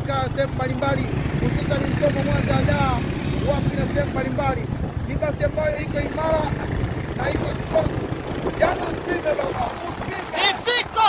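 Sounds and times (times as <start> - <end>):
man talking: 0.0 - 11.0
vehicle engine rumble: 0.0 - 11.0.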